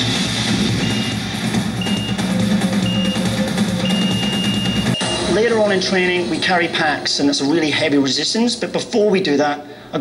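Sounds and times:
background music with a beat: 0.0s - 5.6s
countdown timer beeps: 0.8s - 5.4s.

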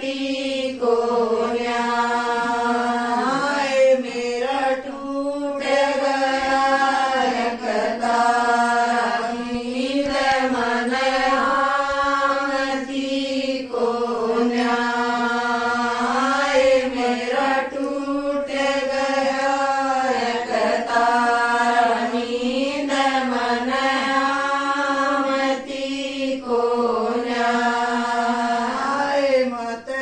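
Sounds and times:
women singing folk song in unison: 0.0s - 30.0s.

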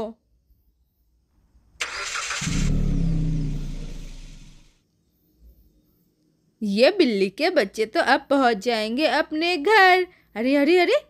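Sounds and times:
engine cranking: 1.8s - 4.7s
low engine hum: 2.4s - 4.8s.

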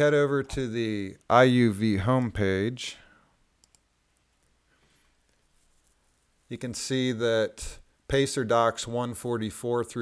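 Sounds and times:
computer mouse clicks: 3.6s - 4.5s.

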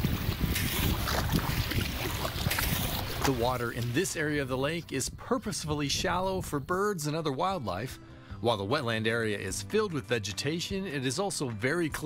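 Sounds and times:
kayak paddle splashing water: 0.0s - 4.2s
wind rumbling on microphone: 0.0s - 6.8s.

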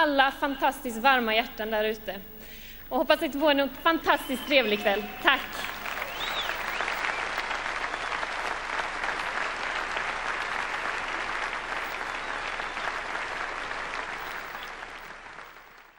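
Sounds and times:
audience applauding: 4.3s - 15.9s.

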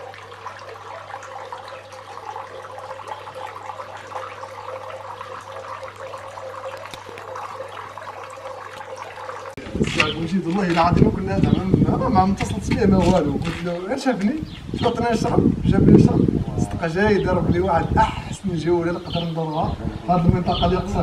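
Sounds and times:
water trickling: 0.0s - 21.0s
man talking: 9.8s - 21.0s.

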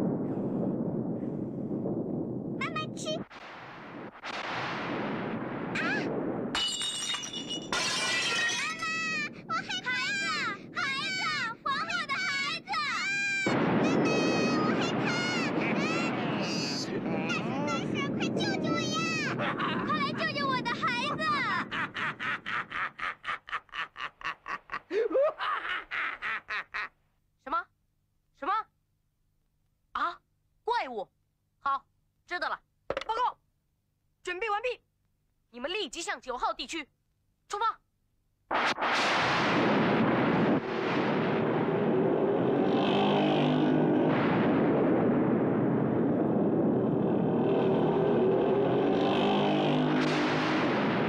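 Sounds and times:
ceramic bowl smashing: 6.6s - 8.8s
cartoon voice pleading: 8.6s - 21.7s
voice wailing and crying out: 13.9s - 18.0s.

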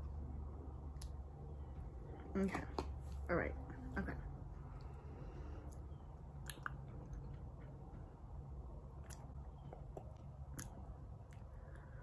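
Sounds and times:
mouth clicks: 6.4s - 7.2s, 9.0s - 11.5s.

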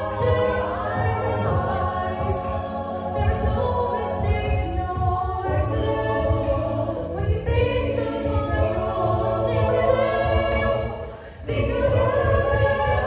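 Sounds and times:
group singing in harmony: 0.0s - 13.0s
vocal percussion beat: 0.0s - 13.0s.

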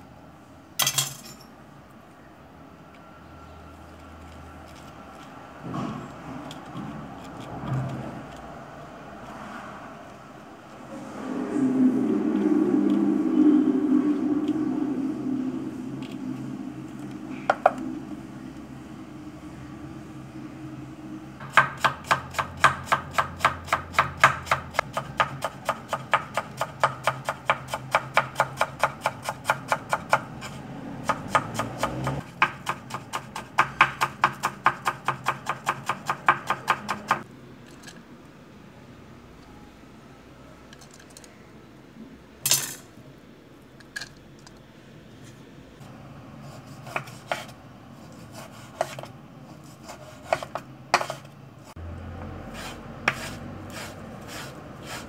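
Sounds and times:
low rumble: 10.4s - 21.4s
knife chopping on wooden board: 50.0s - 51.2s.

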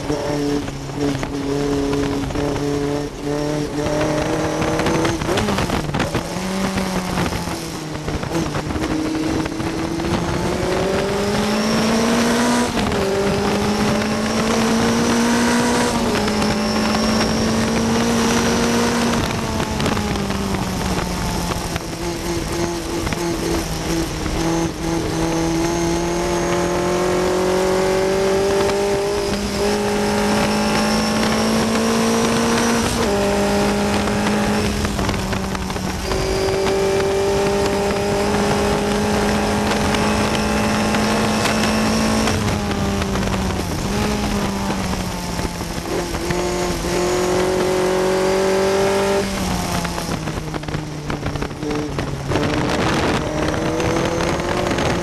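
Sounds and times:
racing car engine at high revs: 0.0s - 55.0s
wind and road noise: 0.0s - 55.0s.

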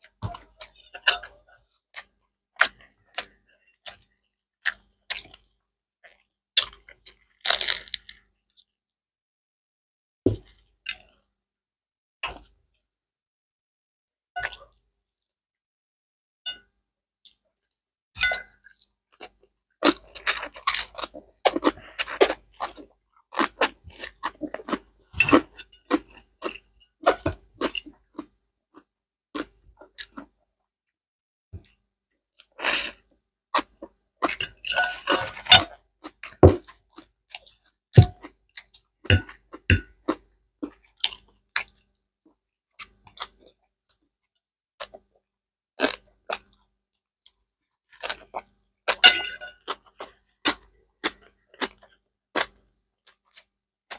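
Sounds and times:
chewing and crunching food: 0.0s - 8.7s, 10.3s - 11.3s, 12.2s - 12.8s, 14.4s - 14.8s, 17.2s - 30.5s, 32.4s - 53.9s.

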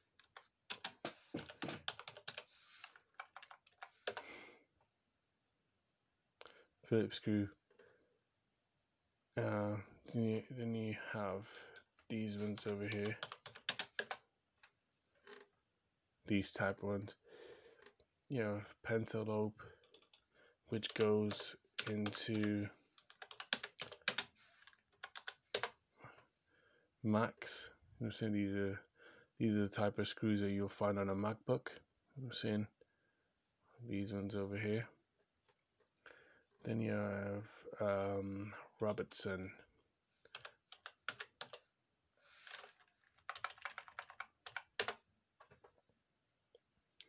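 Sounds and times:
keyboard typing: 0.2s - 4.4s, 11.4s - 14.2s, 19.8s - 20.2s, 20.8s - 25.8s, 40.3s - 41.7s, 43.2s - 45.7s.

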